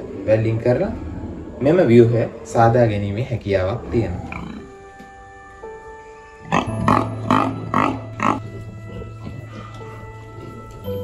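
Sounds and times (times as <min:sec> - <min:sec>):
pig grunting: 0:00.0 - 0:04.9, 0:06.4 - 0:10.7
music of held notes: 0:03.8 - 0:11.0.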